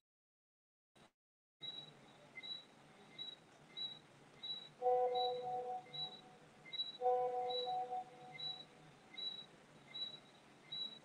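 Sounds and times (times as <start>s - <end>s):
faint high-pitched chirps: 1.6s - 11.0s
held musical note: 4.8s - 6.4s, 7.0s - 8.5s.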